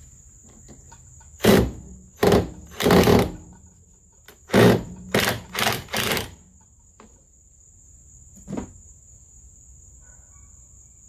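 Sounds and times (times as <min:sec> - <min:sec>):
cordless driver driving screws: 0:04.5 - 0:06.3.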